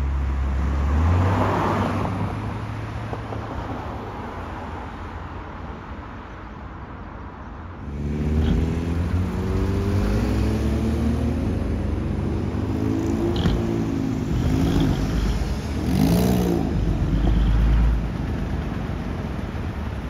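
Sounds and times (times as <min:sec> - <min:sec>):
truck diesel engines driving: 0:07.6 - 0:20.0
small car passing close: 0:07.8 - 0:19.7.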